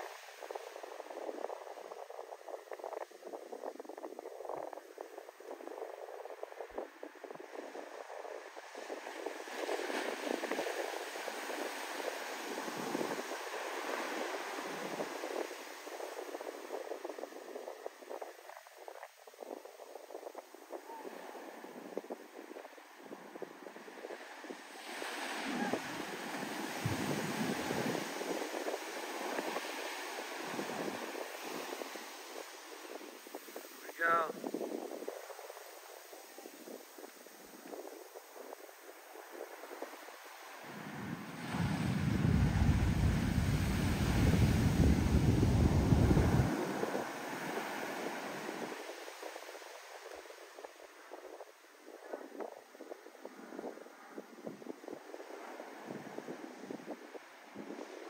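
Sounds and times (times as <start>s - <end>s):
waves breaking on shore: 0.0s - 58.0s.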